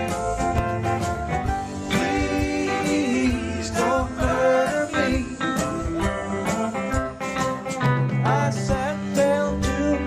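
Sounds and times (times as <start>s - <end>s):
drums: 0.0s - 10.0s
electric guitars: 0.0s - 10.0s
electric keyboard: 0.0s - 10.0s
person singing: 1.8s - 10.0s.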